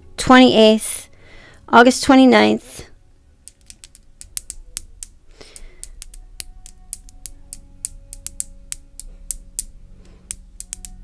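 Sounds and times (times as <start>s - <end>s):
computer keyboard keys clicking: 3.4s - 9.7s, 10.3s - 11.0s.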